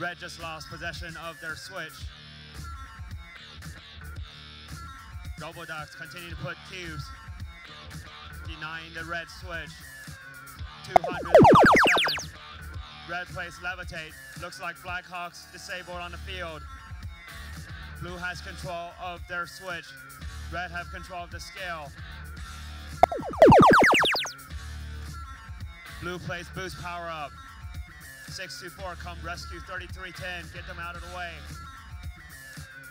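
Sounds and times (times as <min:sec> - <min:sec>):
cascade of falling tones: 0:11.0 - 0:12.2, 0:23.0 - 0:24.3
short electronic blip: 0:11.0 - 0:12.3, 0:23.0 - 0:24.3.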